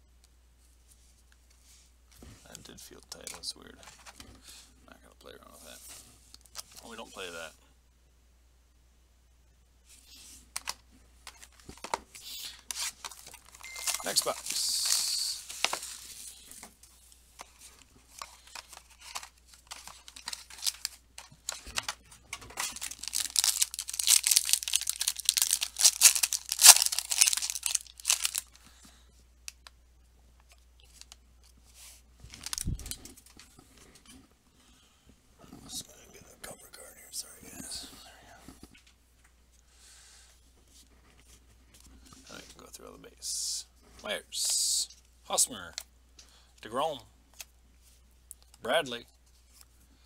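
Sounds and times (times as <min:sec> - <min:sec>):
cards rustling and clicking: 0:10.2 - 0:28.6, 0:30.5 - 0:34.1
wrappers tearing and crinkling: 0:12.3 - 0:16.5, 0:18.1 - 0:28.6, 0:32.3 - 0:33.0.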